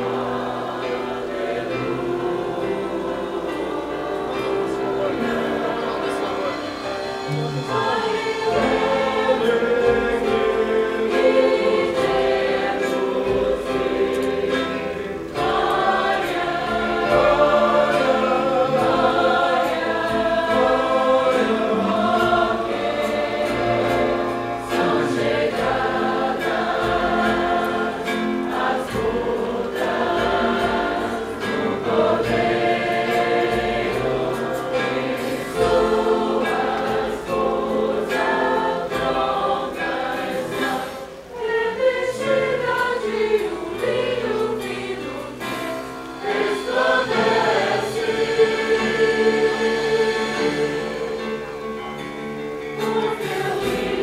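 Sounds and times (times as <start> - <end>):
congregation singing a worship song: 0.0 - 54.0.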